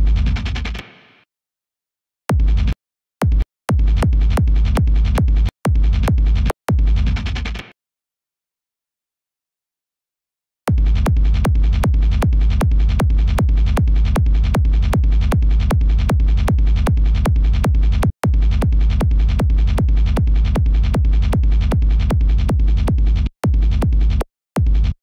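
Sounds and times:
distorted kick drum: 2.3s - 7.2s, 10.7s - 25.0s.

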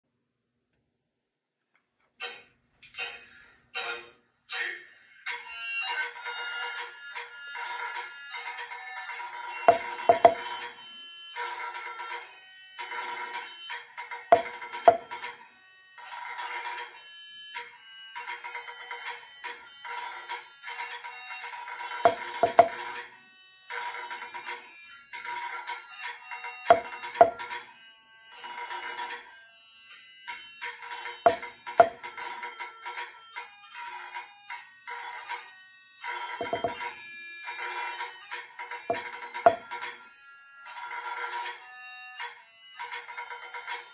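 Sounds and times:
drumsticks striking practice pad: 9.7s - 10.5s, 14.4s - 15.1s, 22.1s - 22.8s, 26.7s - 27.6s, 31.3s - 32.0s, 36.4s - 36.8s, 38.9s - 39.7s
pipe tune: 9.7s - 10.5s, 14.3s - 15.2s, 22.1s - 22.9s, 26.7s - 27.6s, 31.3s - 32.1s, 36.4s - 36.9s, 38.9s - 39.7s.

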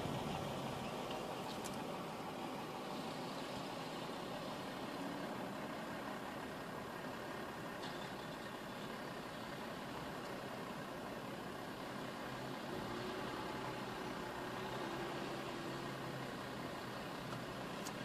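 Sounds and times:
car engine idling: 0.0s - 18.0s.

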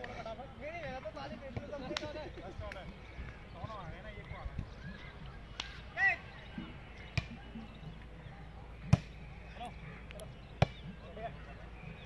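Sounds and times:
volleyball hit by hands: 8.9s - 9.2s.

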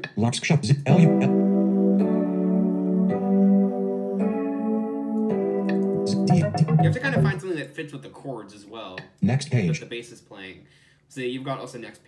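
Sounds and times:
electric piano chords: 1.2s - 7.4s.

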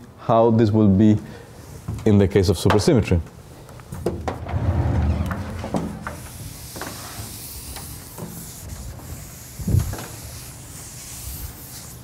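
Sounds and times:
heavy low thump: 4.1s - 6.4s
rubbing on a board: 5.8s - 12.0s.

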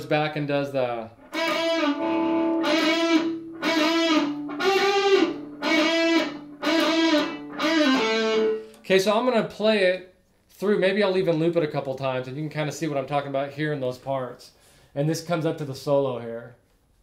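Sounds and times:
electric guitar sustained notes: 1.3s - 8.8s.

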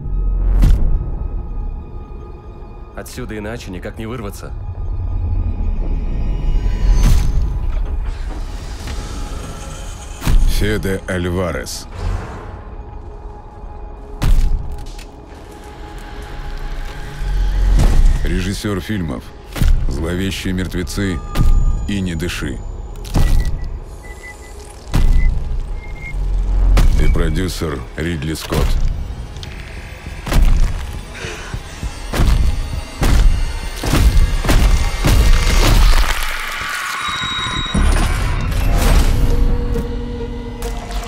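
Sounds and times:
narration: 10.4s - 11.9s, 18.2s - 22.7s, 26.8s - 28.9s.

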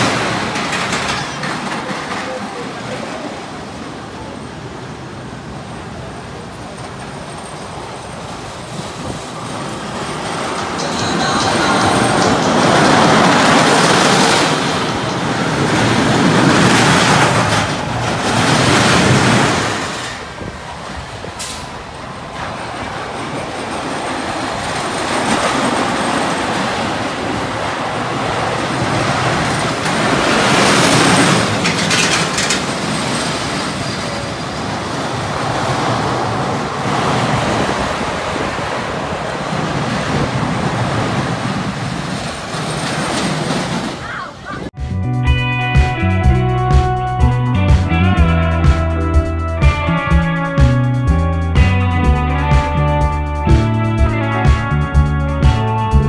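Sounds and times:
coaster wheels rumbling on rails: 0.0s - 44.8s.

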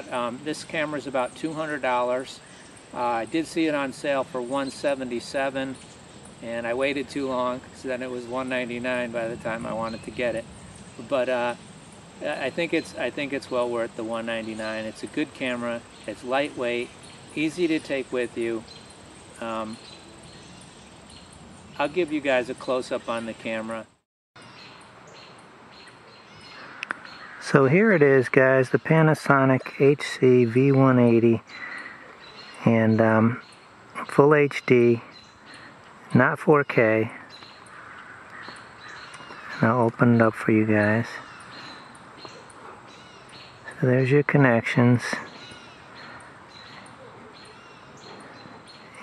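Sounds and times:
distant bird chirps: 0.0s - 49.0s
faint outdoor hiss: 0.0s - 49.0s.

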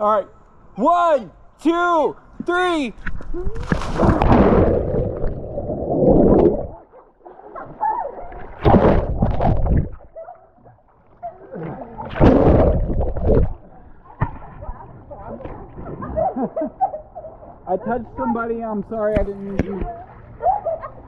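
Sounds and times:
underwater rushing and bubbling: 3.0s - 7.0s, 8.2s - 16.2s
splash into pool: 3.1s - 6.8s, 7.7s - 10.1s, 11.6s - 13.6s.

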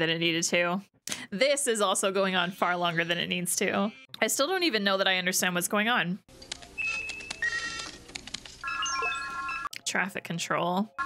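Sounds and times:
electronic computer beeps: 6.8s - 8.0s, 8.6s - 9.7s.

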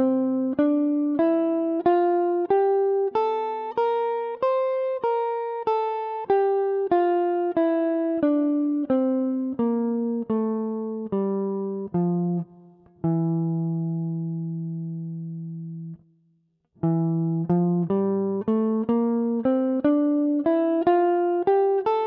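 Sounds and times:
electric guitar picked notes: 0.0s - 16.0s, 16.8s - 22.0s.

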